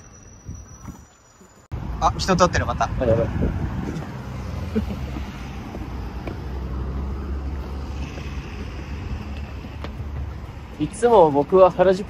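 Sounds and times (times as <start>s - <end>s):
wind rumble on microphone: 2.6s - 6.0s.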